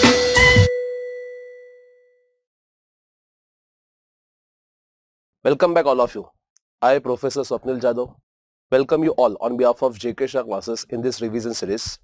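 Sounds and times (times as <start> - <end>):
bell-like chime ding: 0.0 - 2.3.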